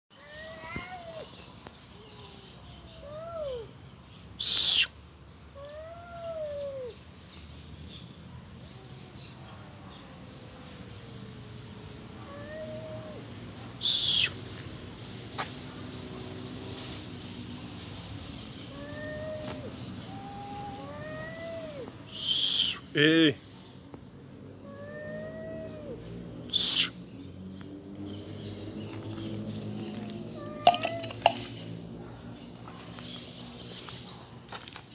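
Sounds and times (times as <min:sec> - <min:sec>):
cat hissing: 0:04.4 - 0:04.9, 0:12.2 - 0:14.4, 0:18.7 - 0:22.9, 0:24.6 - 0:27.0
cat yowling: 0:04.4 - 0:04.9, 0:05.6 - 0:06.9, 0:12.2 - 0:14.4, 0:18.7 - 0:22.8, 0:24.6 - 0:26.9, 0:30.4 - 0:31.2.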